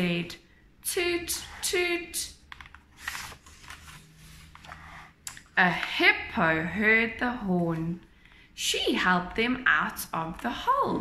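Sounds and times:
paper page rustling: 2.9 - 5.1.

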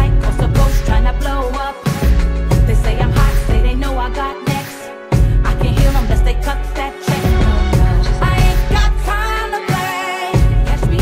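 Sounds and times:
hip hop instrumental beat: 0.0 - 11.0.

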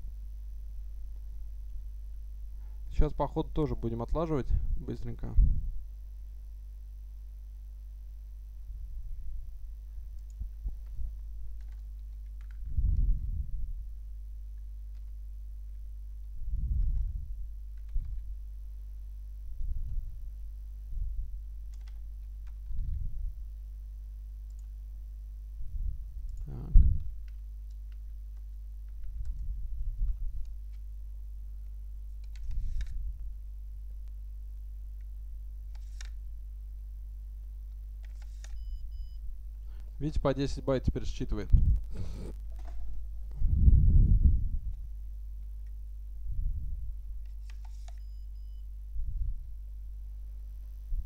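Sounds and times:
low electrical hum: 0.0 - 51.0
computer keyboard typing: 11.5 - 12.6, 21.7 - 23.0
faint high beep: 38.5 - 39.2, 48.0 - 48.7
short vocal sound: 41.9 - 42.4
card swiped through reader: 47.4 - 48.2.

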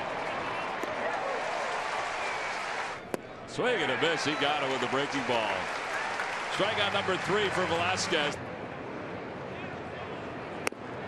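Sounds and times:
crowd cheering and clapping: 0.0 - 3.0, 3.6 - 8.4.

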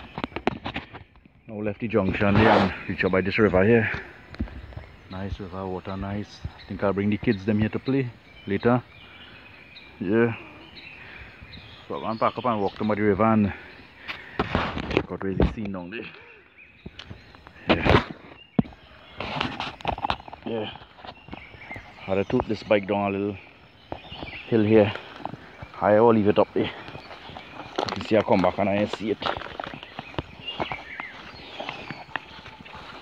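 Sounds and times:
footsteps on grass and leaves: 1.8 - 7.8, 16.8 - 33.0.

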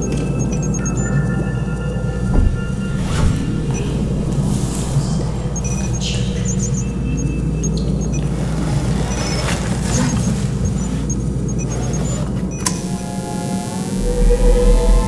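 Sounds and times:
small electronic beeps and clicks: 0.0 - 1.2, 9.1 - 15.0
low mechanical hum: 12.6 - 15.0
synthesizer drone: 12.7 - 15.0
deep bass: 12.8 - 15.0.

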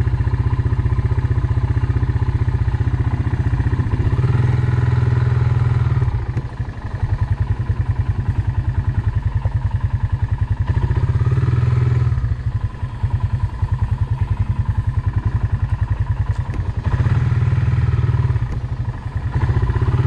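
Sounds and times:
engine chugging at low speed: 0.0 - 20.0.

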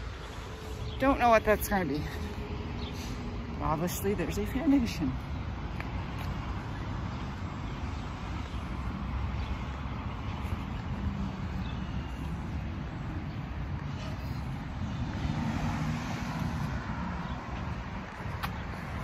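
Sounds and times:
road traffic noise: 0.0 - 19.0.

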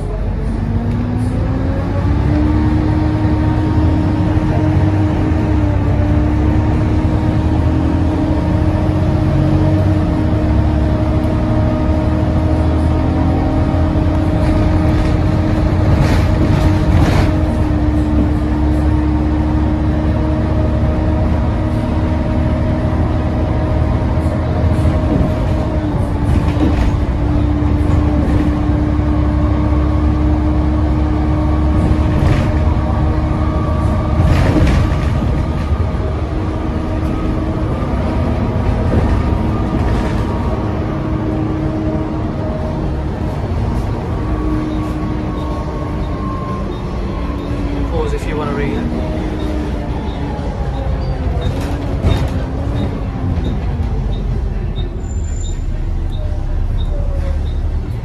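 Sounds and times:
bus diesel engine rumble: 0.0 - 58.0.

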